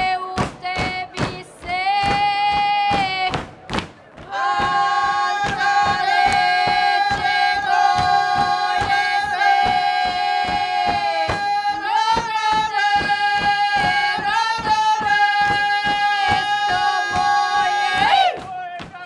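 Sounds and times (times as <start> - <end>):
group singing folk song: 0.0 - 18.8
dancers stamping feet on stage: 0.0 - 19.0.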